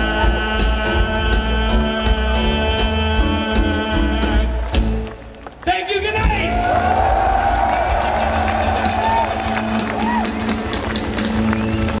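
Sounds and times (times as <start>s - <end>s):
live band music: 0.0s - 12.0s
crowd clapping along: 4.2s - 12.0s.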